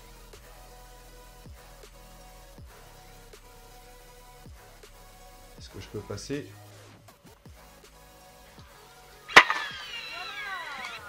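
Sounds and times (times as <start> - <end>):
toy launcher snapping: 9.3 - 11.0.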